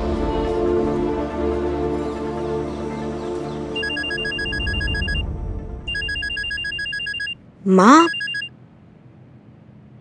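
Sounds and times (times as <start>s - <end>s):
background music: 0.0s - 6.8s
phone ringing electronic trill: 3.8s - 5.2s, 5.9s - 8.5s.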